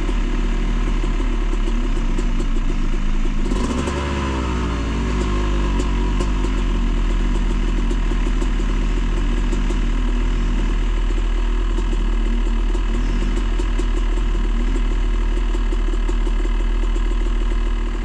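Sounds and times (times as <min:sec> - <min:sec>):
dirt bike engine idling: 0:00.0 - 0:18.0
atv engine revving in mud: 0:03.4 - 0:07.5.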